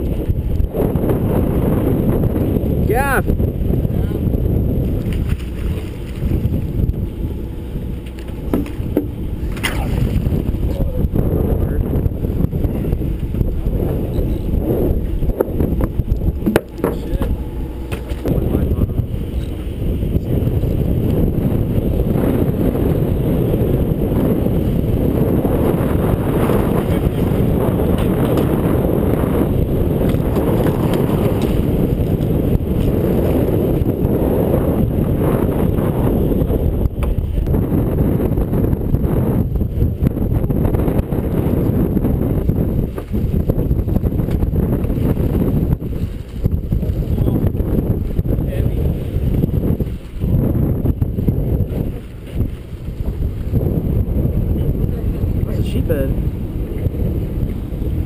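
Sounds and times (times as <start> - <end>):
wind rumbling on microphone: 0.0 - 58.0.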